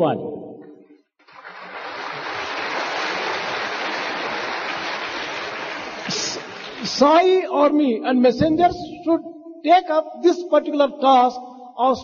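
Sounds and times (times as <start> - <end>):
audience applauding: 1.2 - 7.1.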